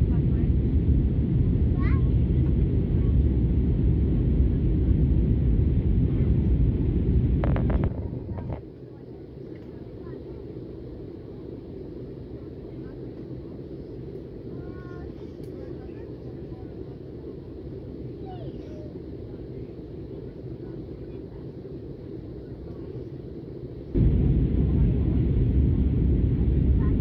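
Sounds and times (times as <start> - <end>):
jet airliner cabin drone: 0.0 - 27.0
faint voices: 7.4 - 27.0.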